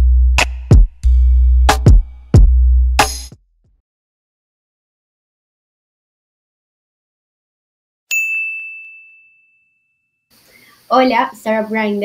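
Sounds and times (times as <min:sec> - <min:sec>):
bright chime ding: 0:08.1 - 0:10.0.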